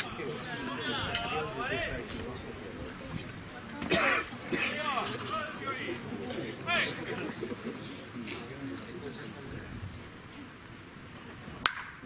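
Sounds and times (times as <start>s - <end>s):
people's voices: 0.0s - 11.4s.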